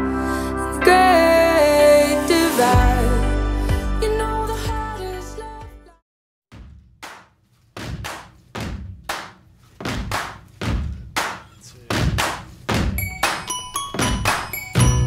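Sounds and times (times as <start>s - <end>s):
percussive hits: 6.5s - 15.0s
bell-like mallet melody: 13.0s - 15.0s.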